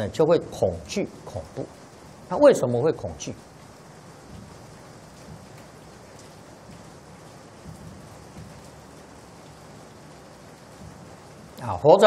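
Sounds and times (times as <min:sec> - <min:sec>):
faint room noise hiss: 0:00.0 - 0:12.0.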